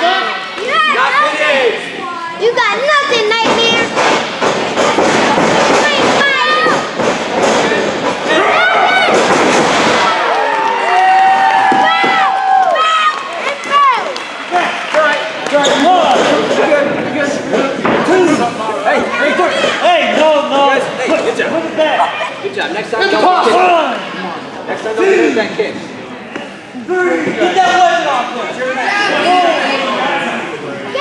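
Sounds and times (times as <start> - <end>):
children's voices: 0.0 - 4.0
spectators shouting and cheering: 7.7 - 16.8
wrestlers thudding onto ring canvas: 9.0 - 10.2.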